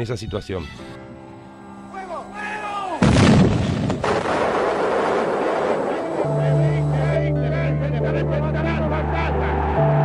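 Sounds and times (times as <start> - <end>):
loud explosion blast: 3.0 - 6.3
sharp crack: 3.0 - 6.3
rumble: 3.0 - 6.8.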